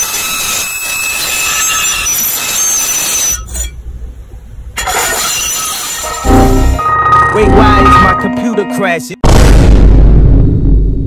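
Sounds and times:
low rumble: 9.3s - 11.0s.

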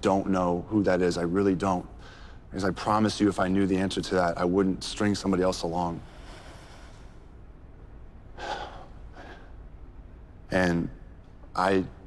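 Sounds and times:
low steady hum: 0.0s - 12.0s
person breathing: 2.0s - 2.5s, 6.0s - 7.2s, 8.4s - 9.6s.

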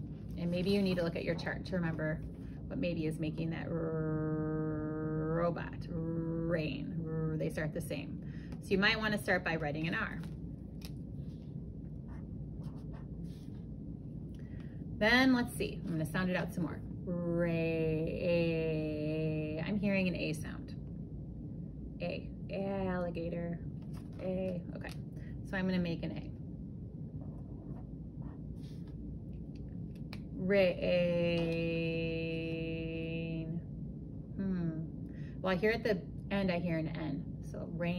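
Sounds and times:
low room hum: 0.0s - 37.9s
pen scratching on paper: 12.1s - 13.5s.

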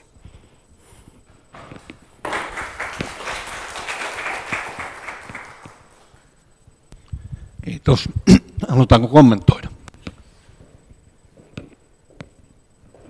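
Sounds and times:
audience applause: 2.2s - 6.2s.

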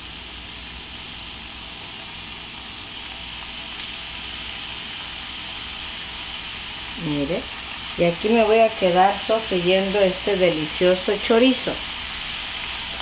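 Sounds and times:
sausage sizzling in a skillet: 0.0s - 13.0s.

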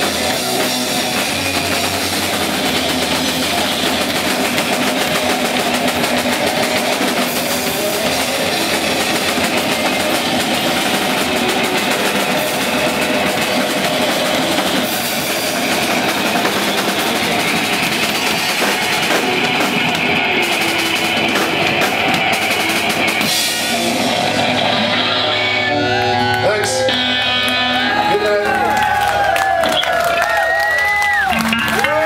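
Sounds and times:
bass guitar: 0.0s - 32.0s
distorted electric guitar: 0.0s - 32.0s
drums: 0.0s - 32.0s.

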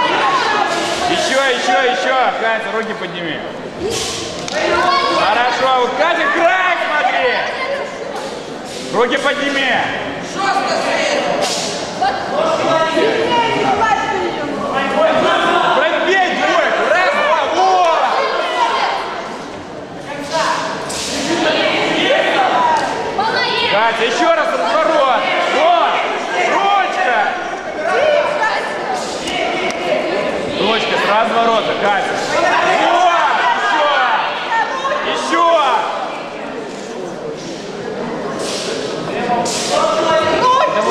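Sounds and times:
voices shouting and talking: 0.0s - 40.9s.

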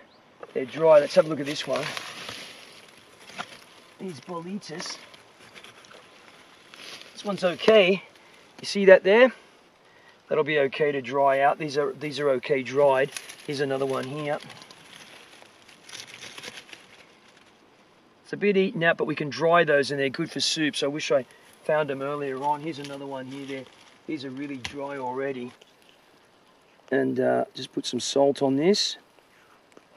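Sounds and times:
rustling in leaves: 0.6s - 18.3s, 19.3s - 29.9s.

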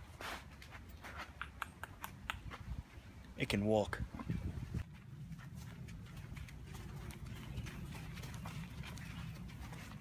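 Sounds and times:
footsteps on dirt path: 0.0s - 1.4s, 4.3s - 10.0s.

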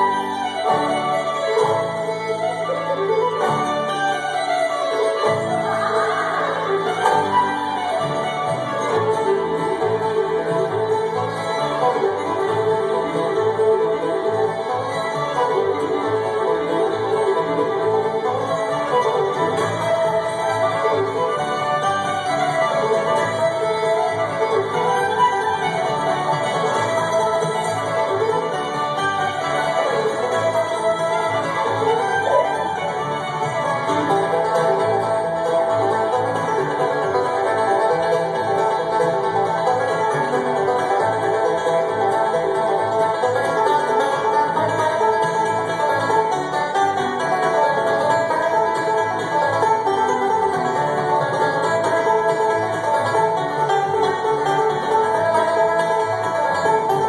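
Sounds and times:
acoustic guitar: 0.0s - 57.0s
fiddle: 0.0s - 57.0s
five-string banjo: 0.0s - 57.0s
mandolin: 0.0s - 57.0s.

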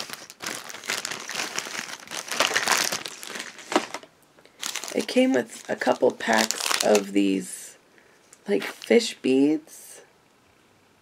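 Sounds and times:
plastic packaging crinkling: 0.0s - 7.2s.

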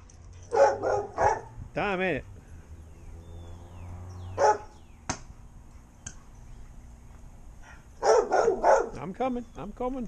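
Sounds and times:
dog barking: 0.5s - 1.6s, 4.4s - 4.8s, 7.6s - 9.0s.

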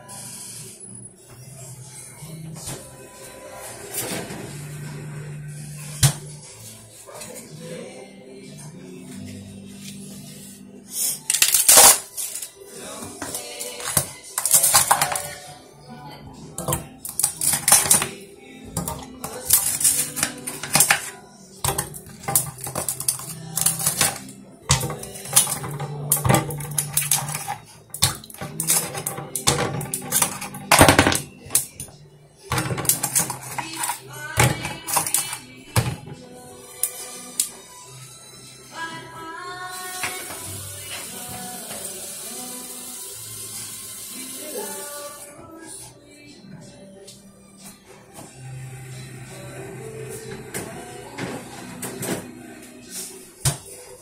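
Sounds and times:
music: 0.0s - 54.0s
person singing: 1.9s - 54.0s
ice cubes clattering in plastic pitcher: 13.7s - 15.4s, 18.8s - 21.1s, 21.7s - 31.7s, 32.5s - 36.0s.

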